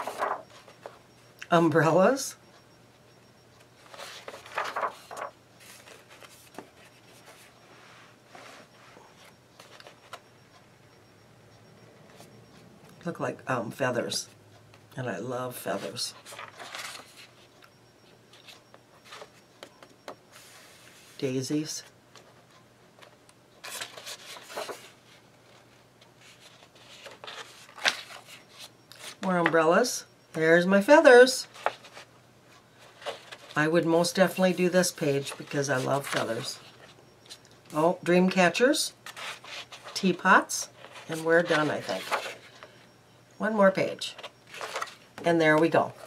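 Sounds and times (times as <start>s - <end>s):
paper rustling: 0.0s - 1.0s, 3.8s - 7.5s, 16.2s - 17.4s, 23.0s - 29.2s, 32.8s - 33.6s, 40.8s - 42.7s, 44.2s - 45.0s.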